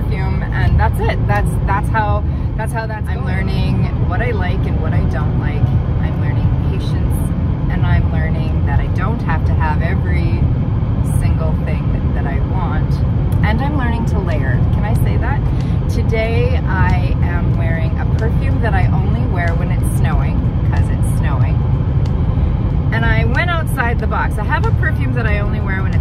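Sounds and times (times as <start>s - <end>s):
woman talking: 0.0s - 21.6s, 22.9s - 26.0s
low rumble of road noise: 0.0s - 26.0s.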